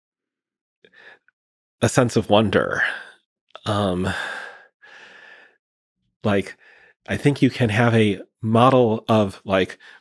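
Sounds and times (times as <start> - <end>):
breathy sigh: 3.0 - 5.6.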